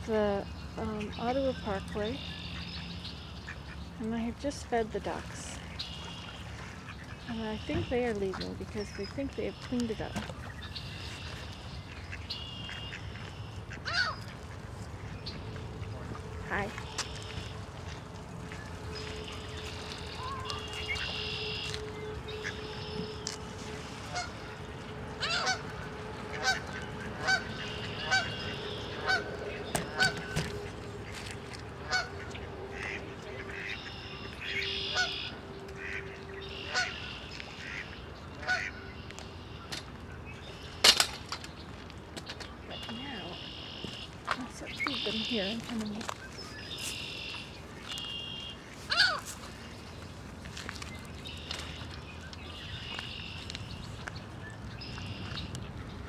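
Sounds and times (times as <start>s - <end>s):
waterfowl calling: 0.2s - 41.4s, 42.6s - 56.0s.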